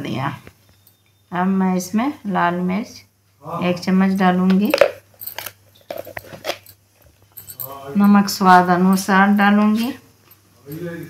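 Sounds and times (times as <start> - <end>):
metallic ring: 0.6 - 1.3.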